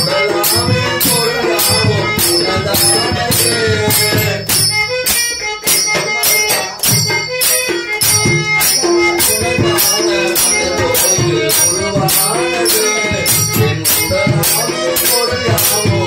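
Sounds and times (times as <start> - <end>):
man singing through a microphone: 0.0 - 7.2, 8.1 - 16.0
metal hand percussion: 0.0 - 16.0.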